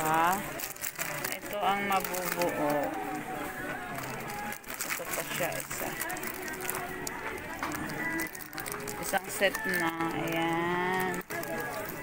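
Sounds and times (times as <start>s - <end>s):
background chatter of people: 0.0s - 12.0s
plastic packaging crinkling: 0.0s - 12.0s.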